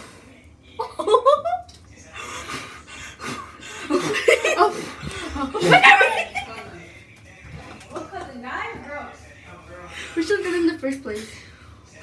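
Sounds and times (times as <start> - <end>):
girls laughing: 0.8 - 1.6, 3.6 - 6.7.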